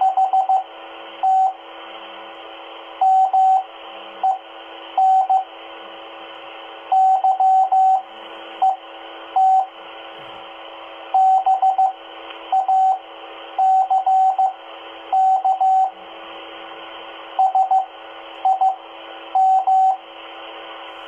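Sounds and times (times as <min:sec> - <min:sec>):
morse code beeps: 0:00.0 - 0:00.6, 0:01.2 - 0:01.6, 0:03.0 - 0:04.4, 0:05.0 - 0:05.5, 0:06.9 - 0:08.0, 0:08.6 - 0:08.8, 0:09.4 - 0:09.7, 0:11.2 - 0:13.0, 0:13.6 - 0:16.0, 0:17.4 - 0:18.8, 0:19.4 - 0:20.0.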